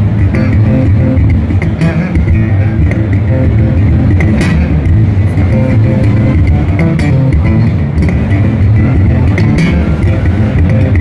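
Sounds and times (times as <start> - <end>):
electric bass guitars funk groove: 0.0 - 11.0
sharp percussive attack: 0.1 - 11.0.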